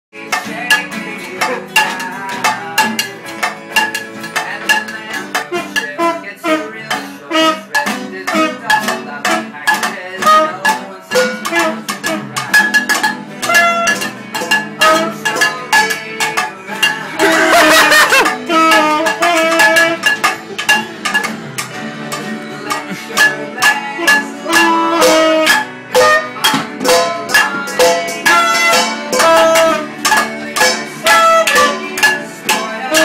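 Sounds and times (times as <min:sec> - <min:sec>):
acoustic guitars strumming: 0:00.1 - 0:33.0
saxophone melody: 0:05.4 - 0:09.5, 0:10.2 - 0:16.0, 0:17.2 - 0:21.9, 0:22.7 - 0:32.2.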